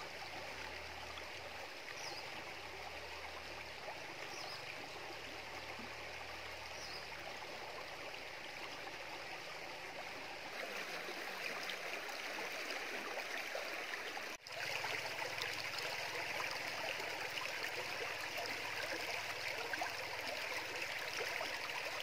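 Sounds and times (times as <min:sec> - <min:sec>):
stream rippling over rocks: 0:00.0 - 0:22.0.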